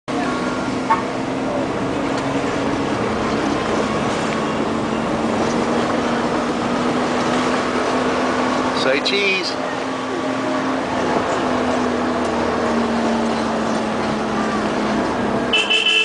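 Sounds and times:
car engine and tyres droning: 0.1 - 16.0.

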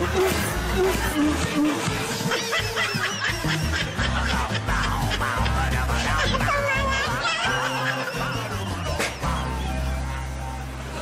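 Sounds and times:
high-pitched laughter: 0.0 - 9.7
background music: 0.0 - 11.0.

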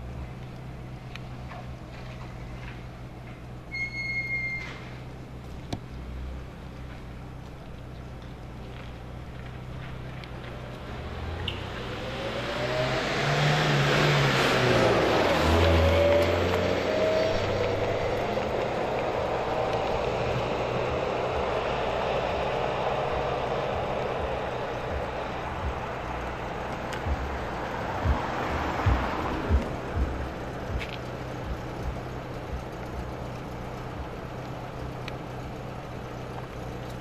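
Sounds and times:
car driving past: 10.6 - 32.5.

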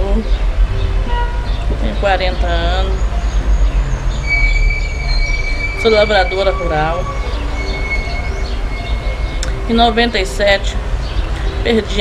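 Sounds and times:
faint steady tones: 0.0 - 12.0.

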